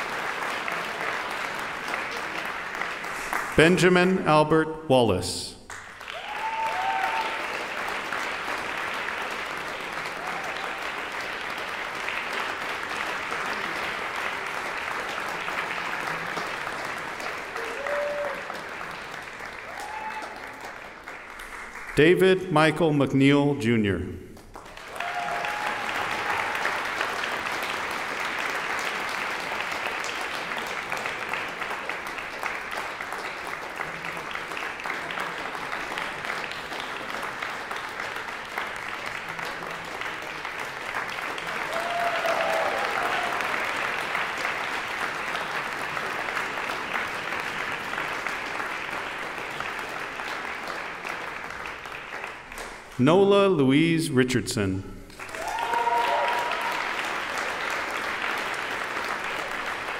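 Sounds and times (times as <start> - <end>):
audience applause: 0.0 - 4.1, 5.7 - 22.3, 24.4 - 53.0, 55.1 - 59.9.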